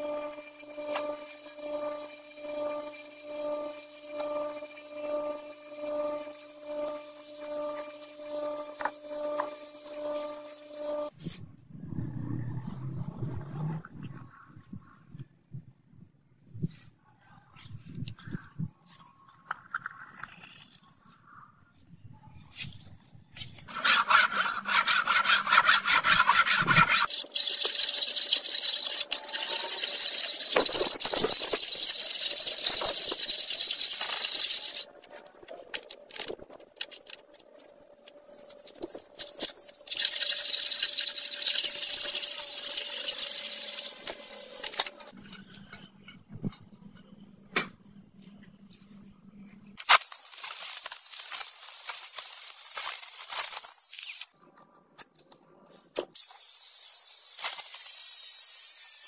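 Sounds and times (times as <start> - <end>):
hand tool scraping metal bar: 23.7 - 34.9.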